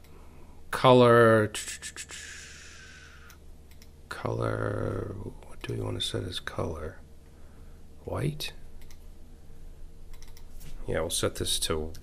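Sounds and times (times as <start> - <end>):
computer keyboard keystrokes: 10.1 - 10.5.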